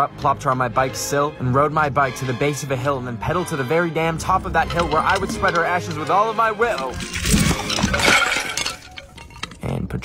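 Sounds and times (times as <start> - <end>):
clay urn shattering: 4.4 - 9.6.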